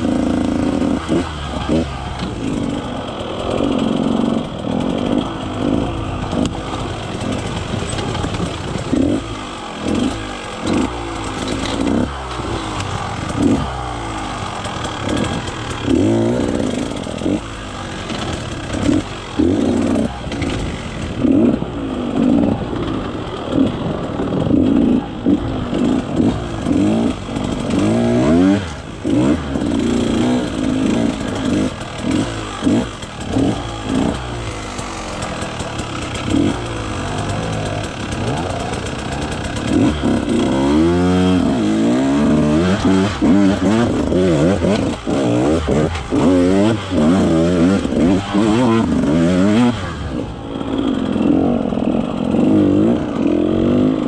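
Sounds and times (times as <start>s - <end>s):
two-stroke dirt bike engine revving: 0.0s - 54.0s.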